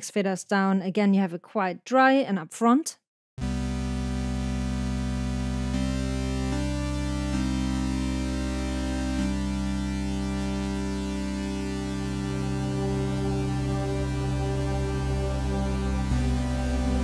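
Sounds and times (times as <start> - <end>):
synthesizer drone chords: 3.4 - 17.0.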